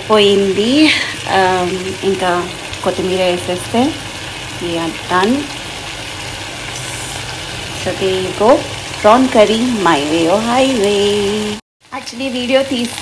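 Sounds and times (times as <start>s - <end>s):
curry sizzling in a pot: 0.0s - 13.0s
woman speaking: 0.1s - 4.0s, 4.6s - 5.5s, 7.8s - 13.0s.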